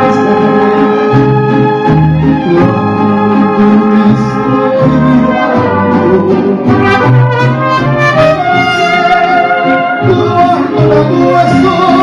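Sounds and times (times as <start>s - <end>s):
mariachi band playing: 0.0s - 12.0s.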